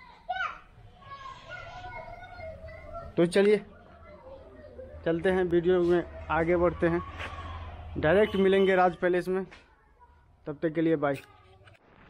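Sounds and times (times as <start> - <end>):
children talking and calling: 0.0 - 11.8.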